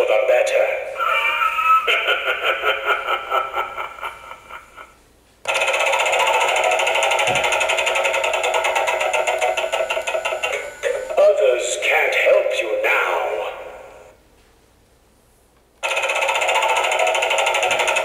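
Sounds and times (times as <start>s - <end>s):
voice from small speaker: 0.0s - 1.9s, 10.8s - 13.8s
fast pulsing electronic sound: 5.5s - 11.3s
rhythmic ticking: 5.5s - 11.4s, 15.8s - 18.0s.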